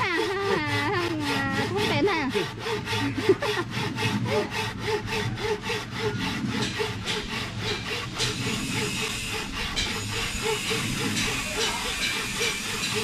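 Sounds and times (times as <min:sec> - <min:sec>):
hand saw cutting through log: 0:00.0 - 0:13.0.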